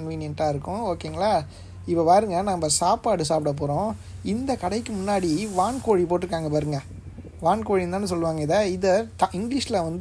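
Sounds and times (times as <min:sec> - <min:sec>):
faint background hiss: 0:00.0 - 0:10.0
person talking: 0:00.0 - 0:10.0.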